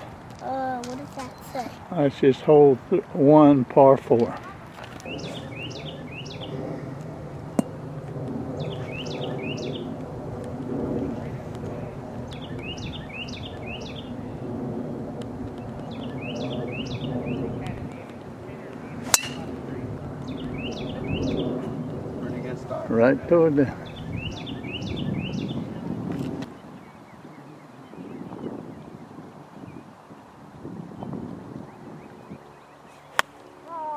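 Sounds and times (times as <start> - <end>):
low outdoor murmur: 0.0 - 30.6
songbird singing: 4.4 - 6.7, 8.5 - 10.0, 11.9 - 14.4, 15.5 - 22.5, 23.6 - 33.9.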